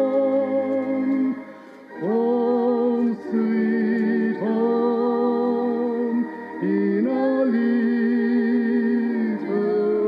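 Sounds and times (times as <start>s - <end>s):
slow gospel song: 0.0s - 10.0s.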